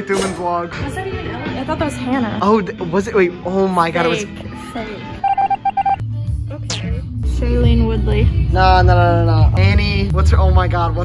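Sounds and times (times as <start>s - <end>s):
background music with low bass: 0.0s - 11.0s
short electronic beeps: 5.2s - 6.0s.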